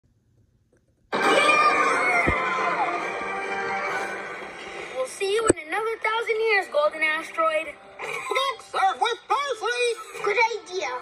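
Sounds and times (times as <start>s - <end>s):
cartoon soundtrack on television: 1.1s - 11.0s.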